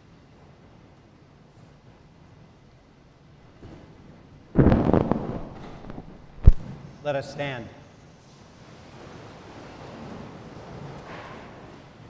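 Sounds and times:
burst of sharp crackling: 0:04.6 - 0:06.7.

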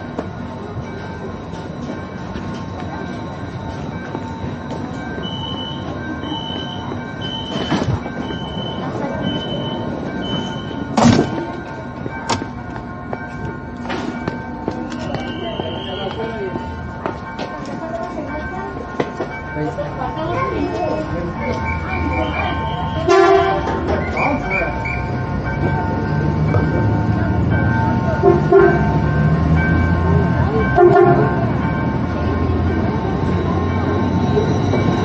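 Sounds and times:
electric train humming: 0:00.0 - 0:35.0
short high warning beeps: 0:05.2 - 0:11.5, 0:21.4 - 0:25.1
train doors shutting thump: 0:07.5 - 0:08.1, 0:10.4 - 0:11.6.

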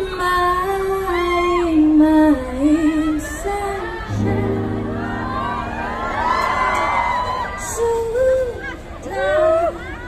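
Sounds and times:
woman singing: 0:00.0 - 0:05.2, 0:07.6 - 0:10.0
crowd singing and whooping: 0:00.0 - 0:10.0.

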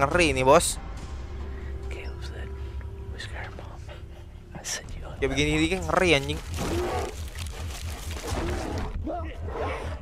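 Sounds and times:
bear breathing and growling: 0:06.4 - 0:09.0.

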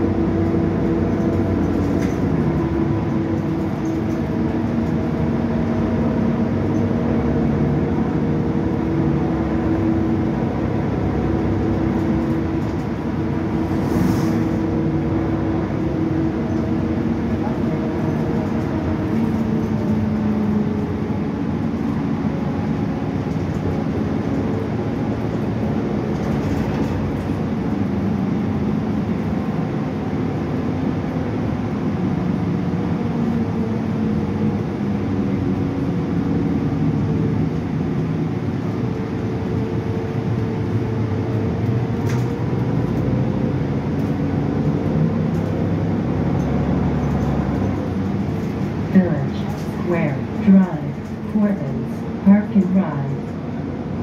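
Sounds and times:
bus engine and drive running: 0:00.0 - 0:54.0
road noise: 0:00.0 - 0:54.0.

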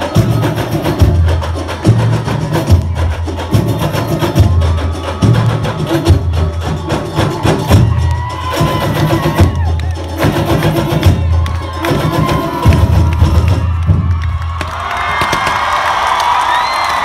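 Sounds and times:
samba drum section playing: 0:00.0 - 0:16.8
crowd cheering and shouting: 0:00.0 - 0:17.0.

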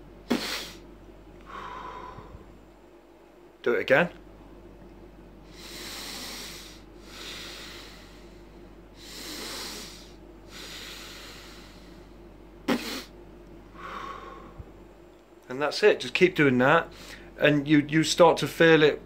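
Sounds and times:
breathing through the nose: 0:01.5 - 0:02.4, 0:05.5 - 0:12.1, 0:13.8 - 0:14.6.

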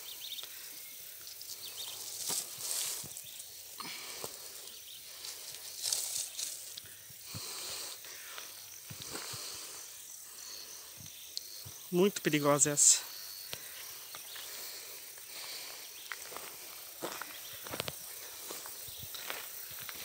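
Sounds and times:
snake hissing: 0:00.0 - 0:11.6
branch scraping on gravel: 0:01.8 - 0:03.6, 0:05.2 - 0:06.8.

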